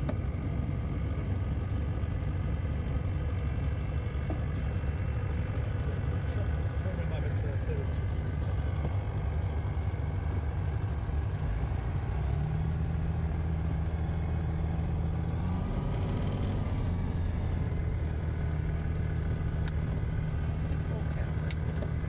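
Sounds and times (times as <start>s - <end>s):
aircraft engine droning: 0.0s - 22.0s.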